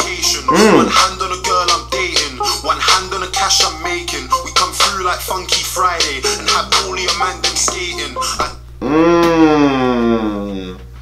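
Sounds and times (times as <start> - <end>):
man's drawn-out vocal exclamation: 0.5 - 1.0, 8.8 - 10.7.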